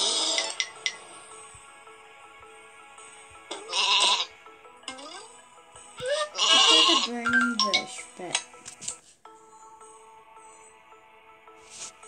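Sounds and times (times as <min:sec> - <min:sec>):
background music: 0:00.0 - 0:12.0
sheep bleating: 0:03.6 - 0:04.3, 0:06.1 - 0:07.1.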